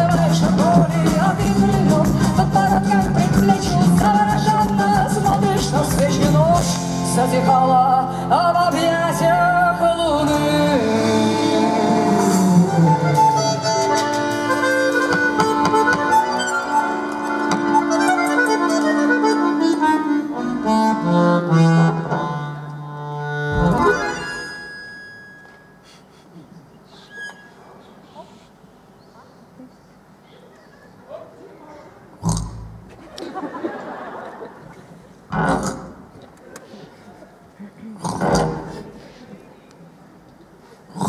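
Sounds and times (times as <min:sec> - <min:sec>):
guitar: 0:00.0 - 0:25.6
keyboard: 0:00.0 - 0:26.1
accordion chords: 0:00.0 - 0:26.3.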